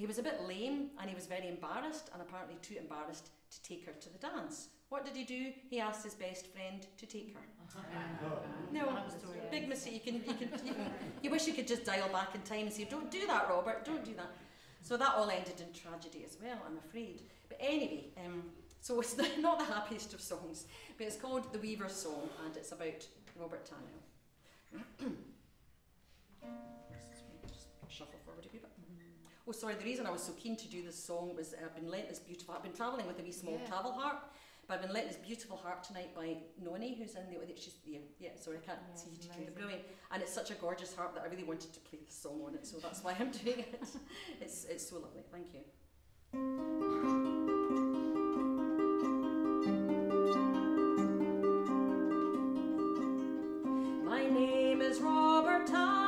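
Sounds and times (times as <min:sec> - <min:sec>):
harp plucked notes: 0:46.4 - 0:55.8.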